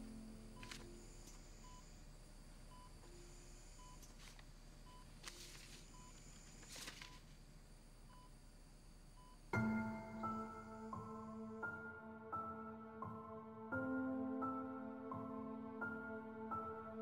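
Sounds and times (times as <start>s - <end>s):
patient monitor beeping: 0.0s - 7.4s, 8.0s - 8.5s, 9.1s - 11.4s
paper rustling: 0.6s - 0.9s, 4.0s - 4.5s, 5.1s - 7.4s
soft melodic music: 9.6s - 17.0s.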